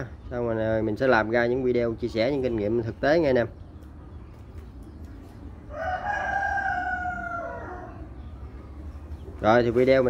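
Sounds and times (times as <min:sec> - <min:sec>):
rooster crowing: 0:05.7 - 0:08.1.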